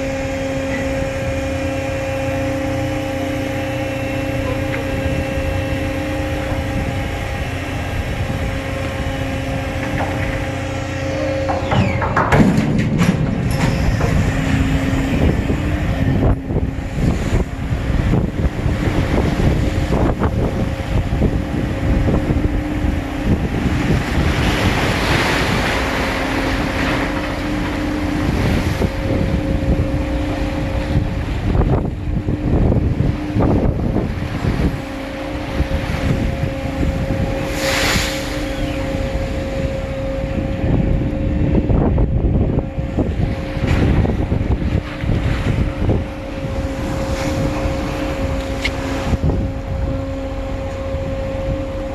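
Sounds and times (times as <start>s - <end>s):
low vessel rumble: 0.0s - 51.9s
ship's wake churning: 0.0s - 51.9s
steady mechanical hum: 0.0s - 51.9s
wind buffeting microphone: 0.0s - 51.9s.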